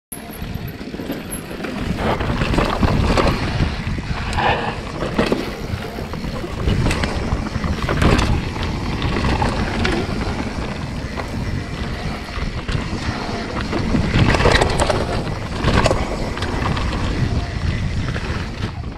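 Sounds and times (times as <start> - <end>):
bike knocks and rattles: 0.2 - 18.9
tyres running on dirt: 0.2 - 18.9
wind noise on microphone: 0.2 - 18.9.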